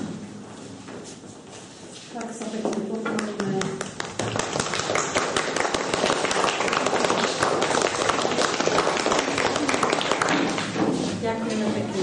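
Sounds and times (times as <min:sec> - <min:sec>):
audience clapping: 0:02.8 - 0:10.9.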